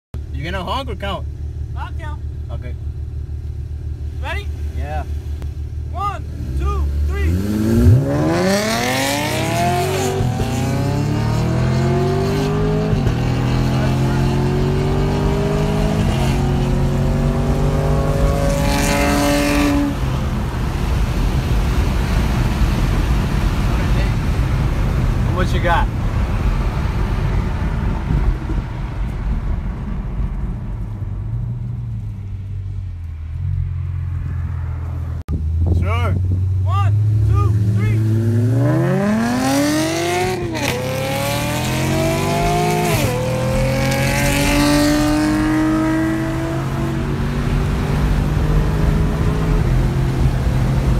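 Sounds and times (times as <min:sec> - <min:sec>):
car engine accelerating: 0:00.4 - 0:50.9.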